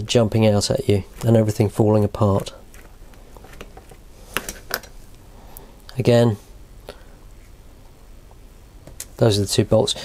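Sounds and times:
small metal parts handled: 0:02.3 - 0:05.0.

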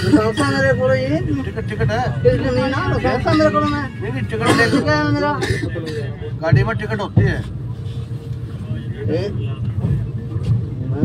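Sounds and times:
men's voices: 0:00.0 - 0:11.0
train carriage rumble: 0:00.0 - 0:11.0.

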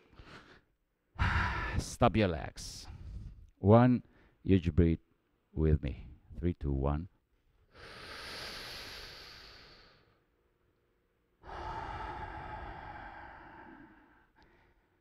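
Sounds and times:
man breathing deeply: 0:00.0 - 0:01.8, 0:07.7 - 0:10.2, 0:11.4 - 0:15.0.

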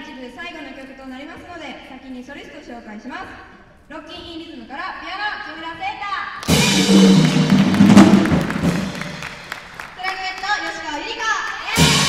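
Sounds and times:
jazz big band ensemble hit: 0:06.4 - 0:09.7
scattered knocks or claps: 0:06.4 - 0:09.9.

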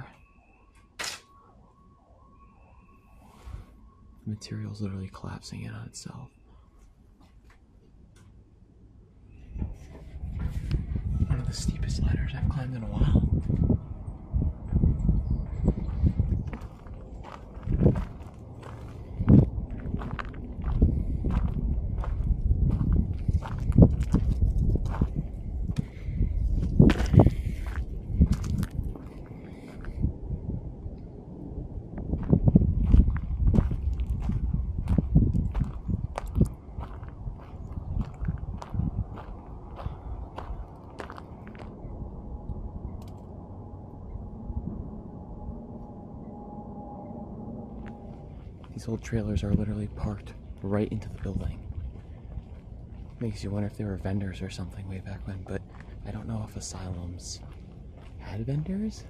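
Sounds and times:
low rumble: 0:01.3 - 0:59.0
footsteps on gravel: 0:15.9 - 0:25.9, 0:26.6 - 0:29.9, 0:32.1 - 0:41.8, 0:47.8 - 0:53.7, 0:54.6 - 0:59.0.

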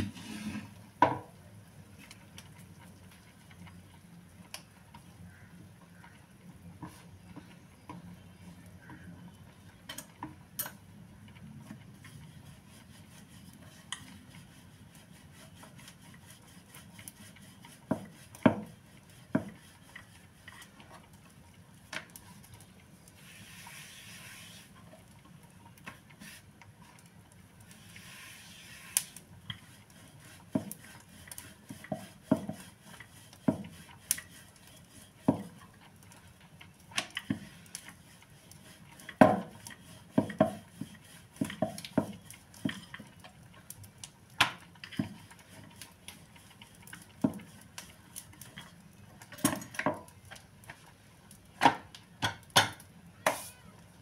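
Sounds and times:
soft rubbing hiss: 0:00.0 - 0:00.9, 0:11.9 - 0:36.3
rolling pin knocking on wooden board: 0:17.9 - 0:18.7, 0:31.9 - 0:32.6, 0:39.2 - 0:39.5, 0:40.1 - 0:40.6.

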